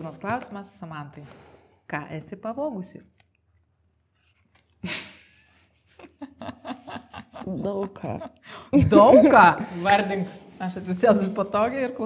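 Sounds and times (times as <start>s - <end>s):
woman laughing: 6.0s - 9.8s.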